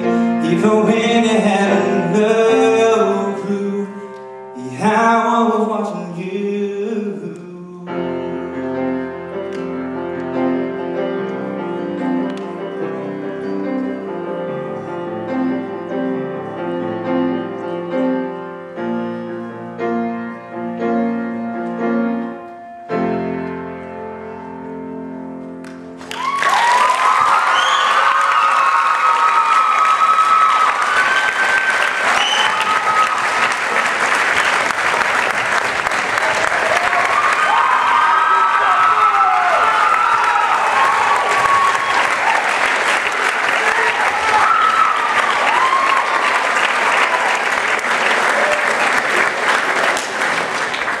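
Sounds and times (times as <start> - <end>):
audience applause: 26.0 - 51.0
crowd cheering and whooping: 26.0 - 51.0.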